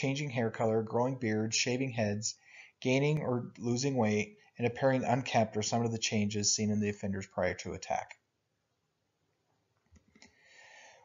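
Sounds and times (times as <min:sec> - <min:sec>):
soft intake of breath: 0:10.4 - 0:11.0.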